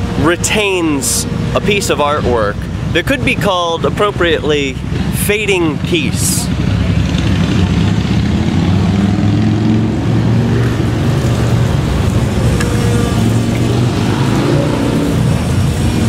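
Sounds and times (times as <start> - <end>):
road traffic rumble: 0.0 - 16.0
vehicle engine running close by: 0.0 - 16.0.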